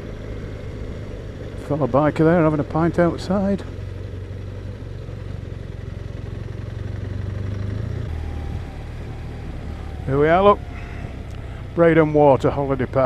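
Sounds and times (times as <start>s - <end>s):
motorcycle engine droning: 0.0s - 13.0s.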